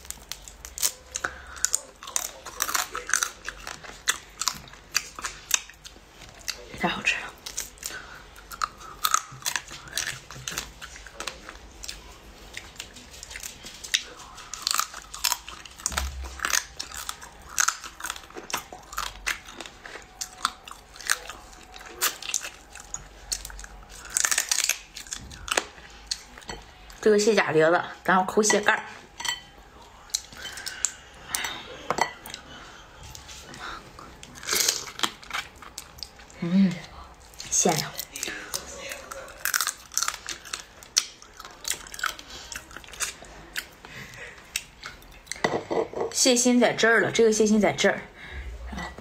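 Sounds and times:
chewing: 0:00.0 - 0:27.0, 0:28.8 - 0:45.4.

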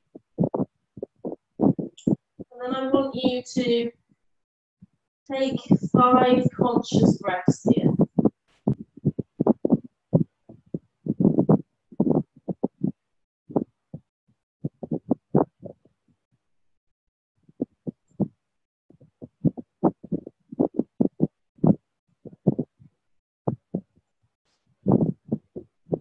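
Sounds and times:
muffled low thumps: 0:00.1 - 0:03.4, 0:05.4 - 0:15.8, 0:19.0 - 0:22.8.

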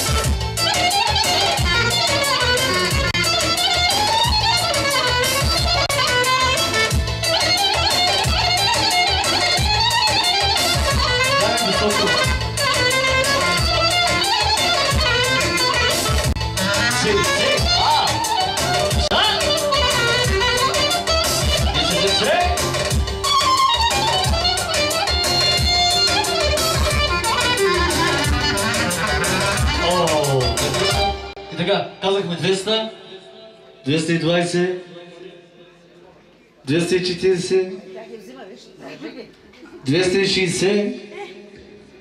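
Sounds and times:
amplified synthesizer dance music: 0:00.0 - 0:31.3.

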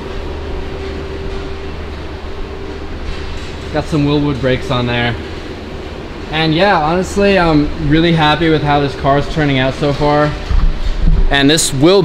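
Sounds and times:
faint whine: 0:00.0 - 0:12.0
machinery rumble and hum: 0:00.0 - 0:12.0.

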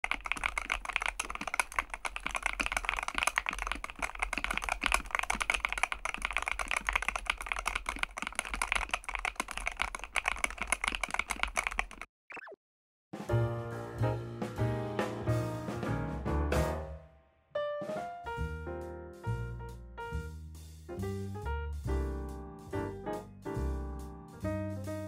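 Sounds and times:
fast keyboard typing: 0:00.0 - 0:12.1.

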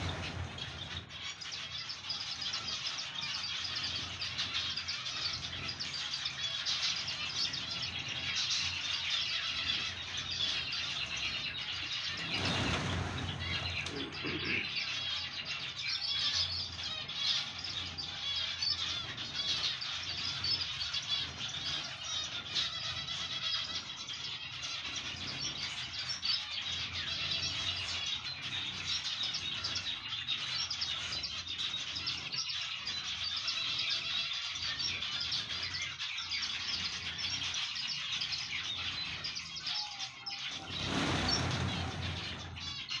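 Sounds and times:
finches chirping: 0:00.0 - 0:43.0.

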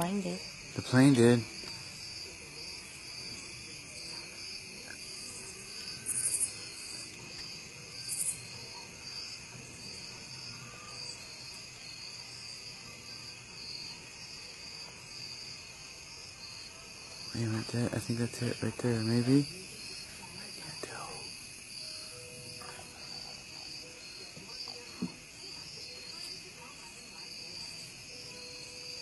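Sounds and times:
insect chirring: 0:00.0 - 0:29.0.

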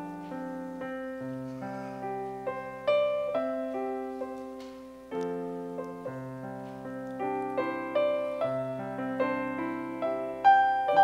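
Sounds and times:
gentle piano melody: 0:00.0 - 0:11.0.

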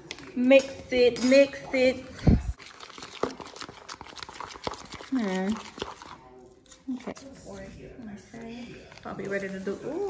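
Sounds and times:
fork stirring batter: 0:02.4 - 0:10.0.

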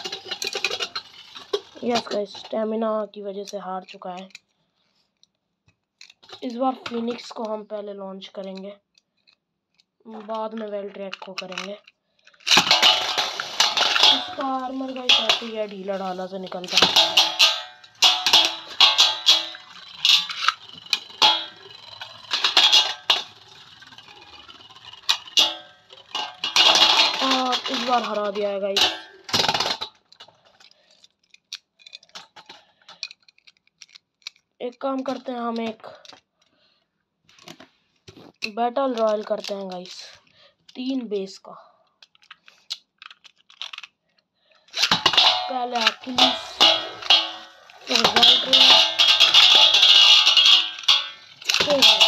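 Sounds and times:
spinning tops clicking and scraping: 0:00.0 - 0:02.6, 0:12.4 - 0:29.9, 0:44.7 - 0:52.0
metal dish ringing: 0:12.7 - 0:29.3, 0:45.1 - 0:52.0.

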